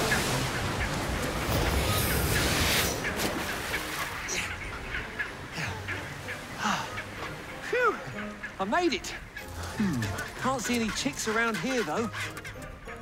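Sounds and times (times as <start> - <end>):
penguins squawking: 3.8 - 13.0.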